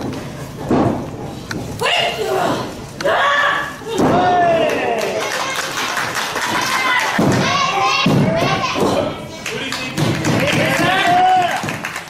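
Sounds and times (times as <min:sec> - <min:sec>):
people shouting: 0:01.8 - 0:05.3, 0:06.5 - 0:09.2, 0:10.4 - 0:11.6.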